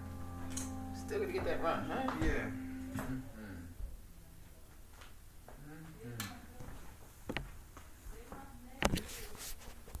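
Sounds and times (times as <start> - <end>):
low indistinct voices: 1.0 - 4.4.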